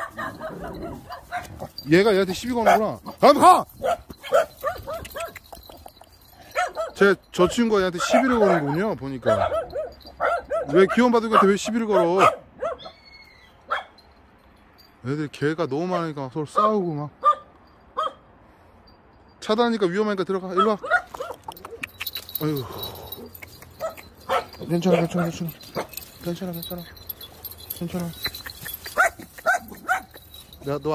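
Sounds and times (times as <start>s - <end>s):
dogs barking: 0.0s - 5.8s, 6.4s - 13.0s, 13.7s - 14.0s, 16.6s - 18.3s, 20.6s - 30.7s.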